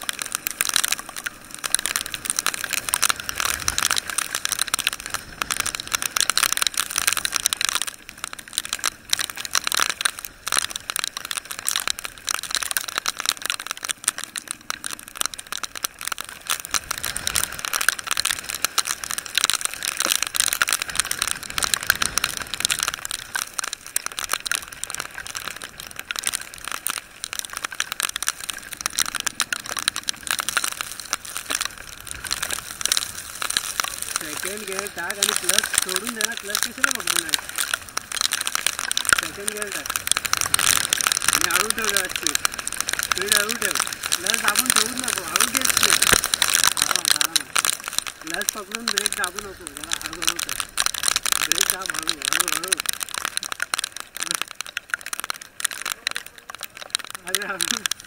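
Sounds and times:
rain crackling on rain gear: 0.0 - 58.0.

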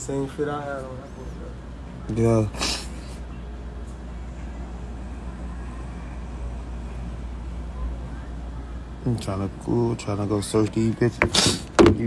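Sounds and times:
low room rumble and hum: 0.0 - 12.0.

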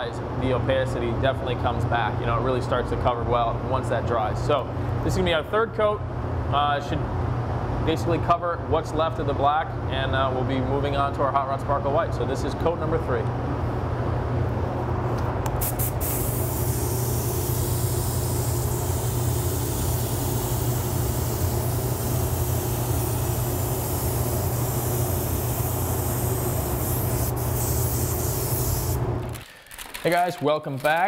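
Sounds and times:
spray gun hissing: 15.6 - 29.0.

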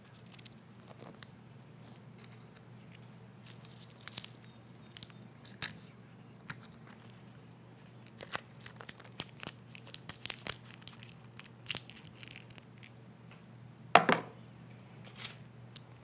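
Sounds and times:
packing peanuts crackling: 2.2 - 13.0.

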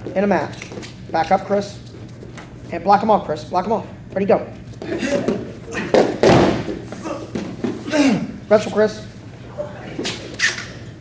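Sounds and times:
body thump on mat: 5.3 - 7.8.

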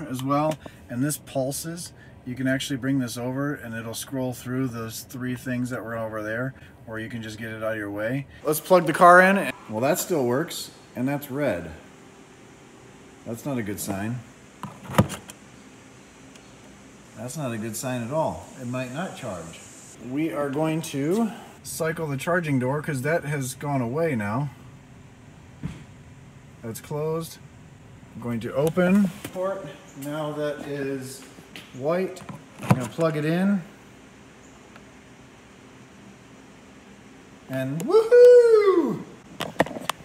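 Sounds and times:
faint hum: 0.0 - 40.0.

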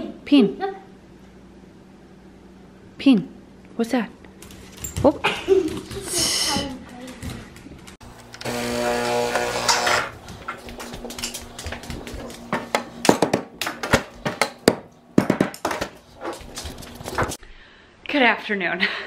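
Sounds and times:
espresso machine motor humming: 8.2 - 10.0
portafilter knocking and clattering: 12.5 - 16.0.

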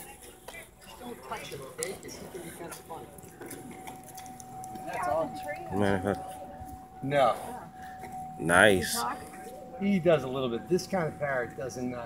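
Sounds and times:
people talking indistinctly: 0.0 - 12.0
thin steady tone: 0.0 - 12.0.

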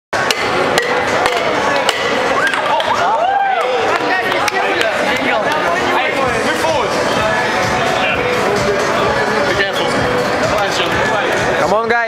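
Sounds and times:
crowd noise: 0.1 - 12.0.

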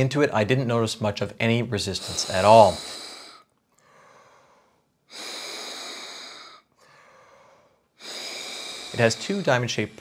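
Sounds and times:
breath blown into a fan duct: 2.0 - 9.8.

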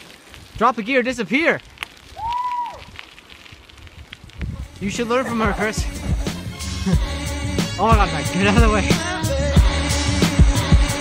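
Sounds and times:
bicycle tyres rolling on road: 0.0 - 8.8
wind: 0.0 - 11.0.

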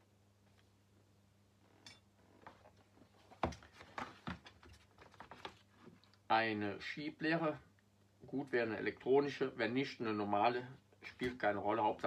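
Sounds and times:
faint steady hum: 0.0 - 12.0
objects set down on workbench: 1.8 - 6.0.

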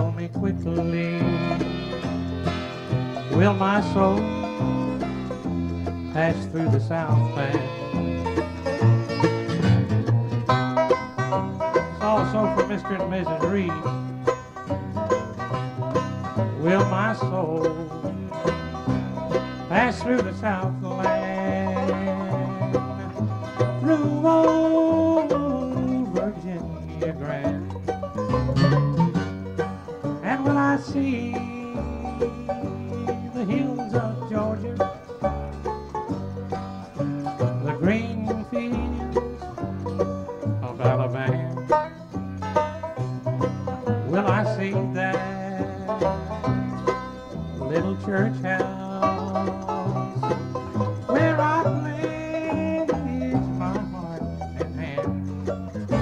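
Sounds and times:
bluegrass band playing: 0.0 - 56.0.

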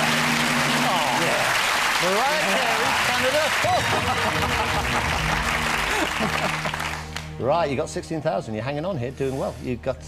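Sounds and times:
audience applauding and cheering: 0.0 - 7.5.

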